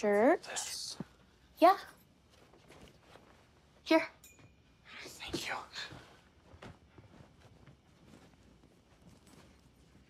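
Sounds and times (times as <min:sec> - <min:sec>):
soft breathy whisper: 0:04.8 - 0:06.3.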